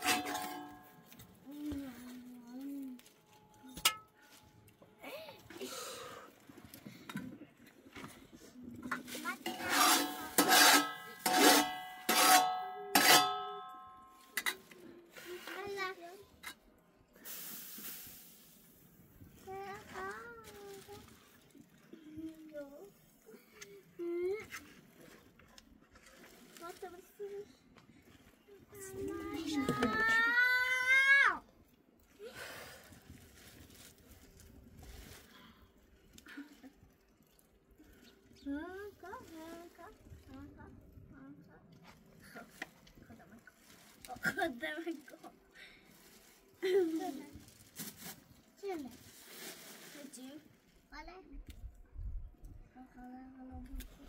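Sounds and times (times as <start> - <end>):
brief hiss: 17.2 - 18.8.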